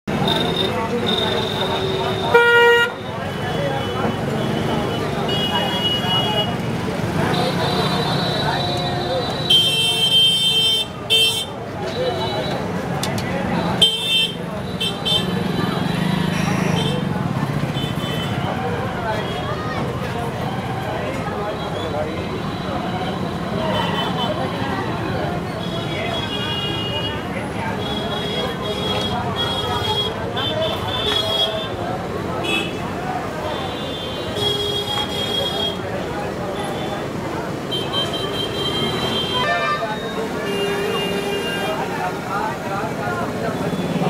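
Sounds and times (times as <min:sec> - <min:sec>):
traffic: 0:00.0 - 0:44.0
vehicle horns: 0:00.1 - 0:12.7, 0:13.6 - 0:17.1, 0:25.5 - 0:31.8, 0:32.4 - 0:42.0
murmur of voices: 0:00.1 - 0:44.0.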